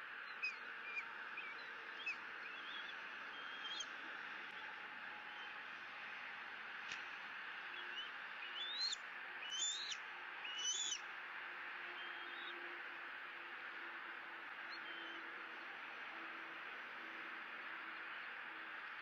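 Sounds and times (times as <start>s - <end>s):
eagle piping calls: 0.4s - 3.9s, 8.5s - 11.0s.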